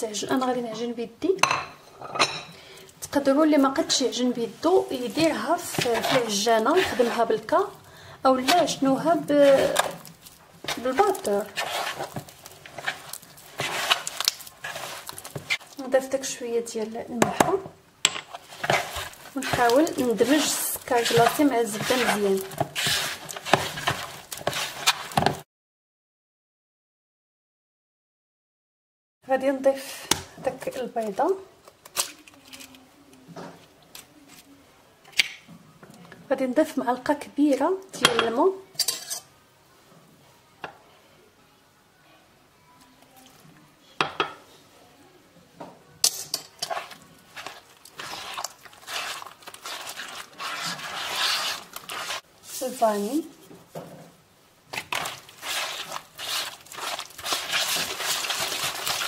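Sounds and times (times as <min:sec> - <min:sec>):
hands squishing butter in bowl: 0:03.6 - 0:16.4, 0:18.3 - 0:25.4, 0:46.1 - 0:53.2, 0:54.7 - 0:59.0.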